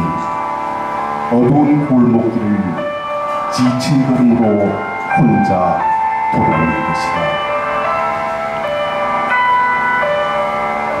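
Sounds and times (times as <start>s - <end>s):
slow melody of held notes: 0.0s - 11.0s.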